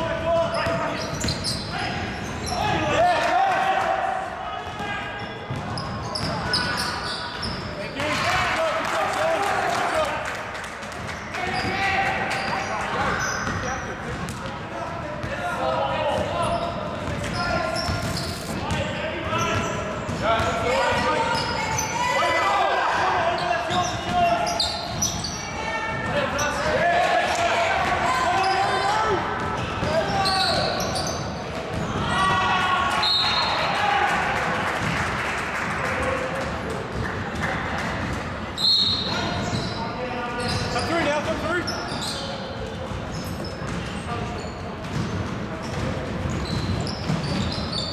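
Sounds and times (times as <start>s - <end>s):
players calling and shouting: 0.0s - 47.9s
ball bouncing on hardwood court: 5.4s - 6.7s, 31.5s - 32.5s, 42.8s - 44.0s, 44.8s - 47.6s
short high squeaks: 17.3s - 18.6s.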